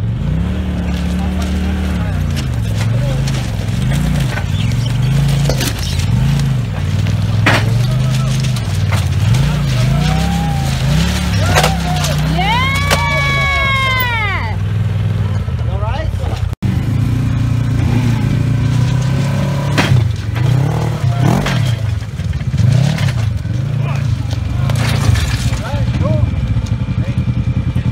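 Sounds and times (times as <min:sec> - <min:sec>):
off-road vehicle engines revving: 0:00.0 - 0:27.9
voices calling out: 0:00.0 - 0:27.9.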